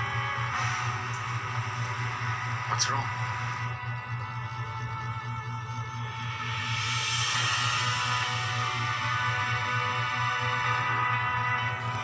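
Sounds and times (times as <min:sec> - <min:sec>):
sustained chords over pulsing bass: 0:00.0 - 0:12.0.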